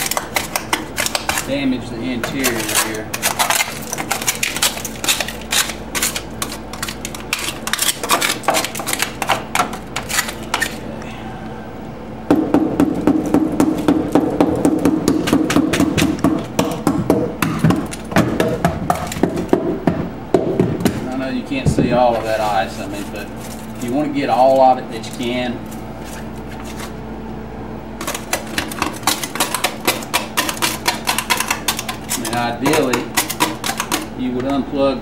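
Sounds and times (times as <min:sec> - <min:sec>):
plastic scraper scraping ice: 0:02.2 - 0:09.4, 0:28.0 - 0:34.1.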